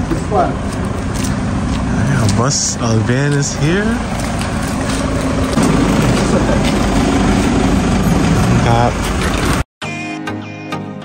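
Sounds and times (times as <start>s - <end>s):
van engine running: 0.0s - 9.6s.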